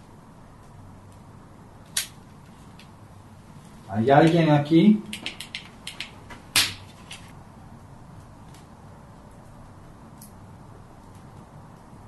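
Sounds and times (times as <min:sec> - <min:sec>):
faint background hiss: 0:00.0 - 0:12.0
wood fire crackling: 0:00.0 - 0:12.0.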